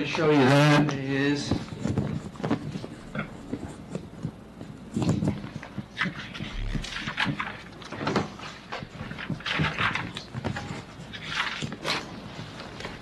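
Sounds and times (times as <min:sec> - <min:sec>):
microphone handling rustles: 0:00.0 - 0:13.0
papers shuffling: 0:00.0 - 0:13.0.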